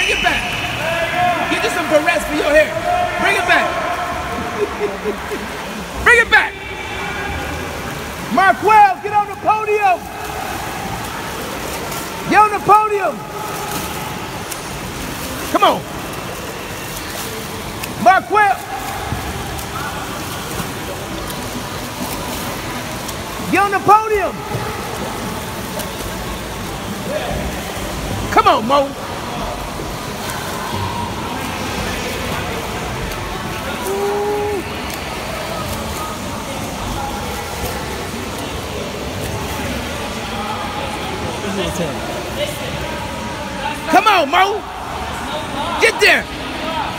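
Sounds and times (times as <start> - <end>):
faint distant voices: 0.0 - 46.9
swimmer splashing in pool: 0.0 - 46.9.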